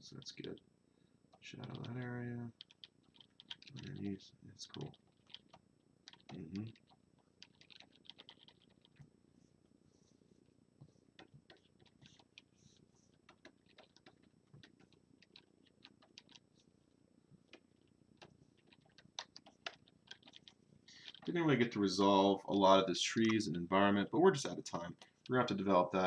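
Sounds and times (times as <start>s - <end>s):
keyboard keys clicking: 2.6s - 4.0s, 4.7s - 9.0s, 13.2s - 16.4s, 18.2s - 21.4s
stylus tapping on screen: 13.2s - 16.4s.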